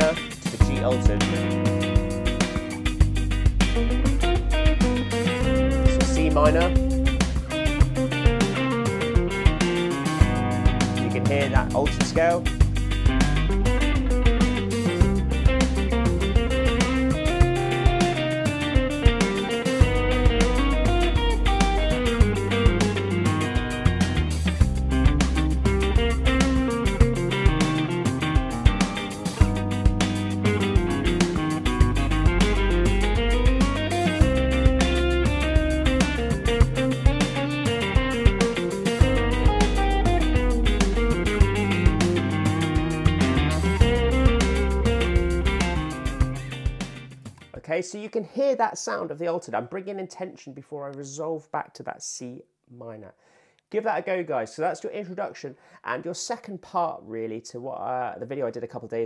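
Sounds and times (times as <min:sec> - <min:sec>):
backing track bass and drums: 0:00.0 - 0:47.5
electric guitar lead lines: 0:00.0 - 0:47.6.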